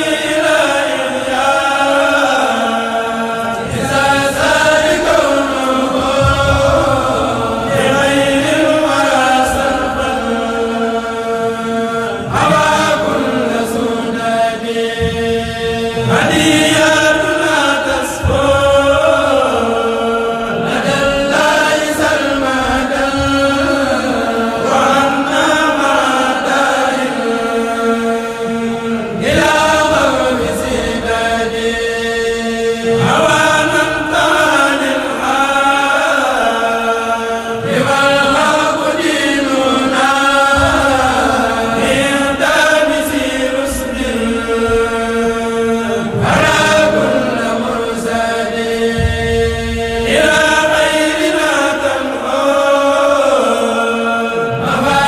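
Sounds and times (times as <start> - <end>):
male choir chanting in unison: 0.0 - 55.0
voices holding long steady note: 0.0 - 55.0.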